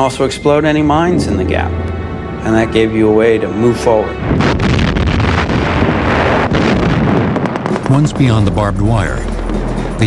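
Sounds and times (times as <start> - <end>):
music: 0.0 - 6.5, 7.7 - 10.0
rumble of explosions: 4.2 - 10.0.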